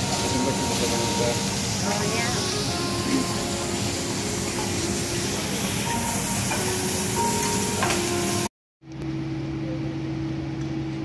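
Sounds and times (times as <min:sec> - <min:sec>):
food sizzling on a griddle: 0:00.0 - 0:08.5.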